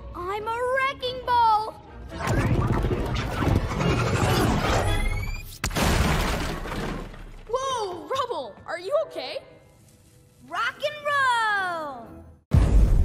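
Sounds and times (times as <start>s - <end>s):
smashing and shattering debris: 5.6s - 7.5s.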